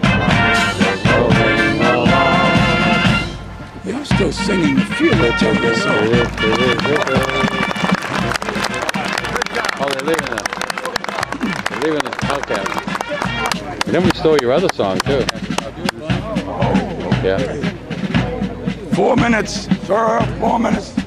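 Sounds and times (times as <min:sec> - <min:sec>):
crowd singing and shouting: 0:00.0 - 0:03.4
band music: 0:00.0 - 0:21.0.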